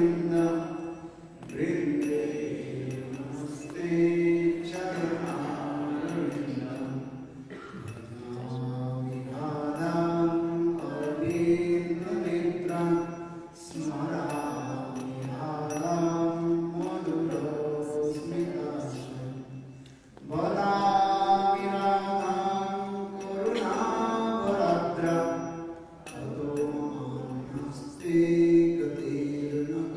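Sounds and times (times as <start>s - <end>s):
man chanting into microphone: 20.2s - 25.6s.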